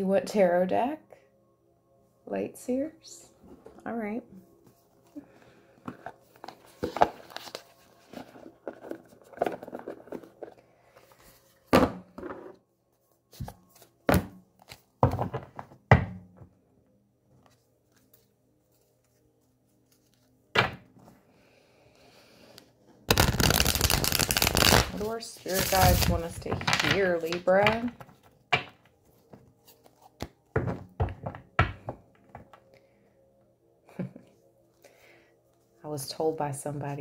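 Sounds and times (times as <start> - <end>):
cards shuffling: 5.9 - 11.3, 23.1 - 28.4.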